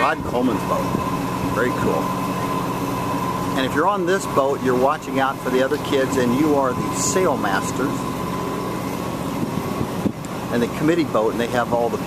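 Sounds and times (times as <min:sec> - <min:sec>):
low engine hum: 0:00.0 - 0:12.0.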